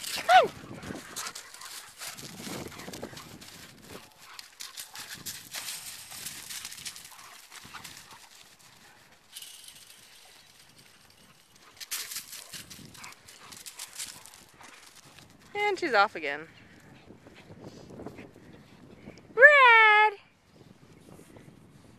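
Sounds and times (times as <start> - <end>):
dogs running on grass: 0.0 - 18.4.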